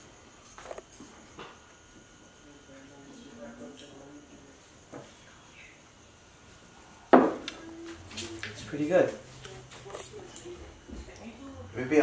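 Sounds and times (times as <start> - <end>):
mug set down on wooden table: 7.2 - 7.4.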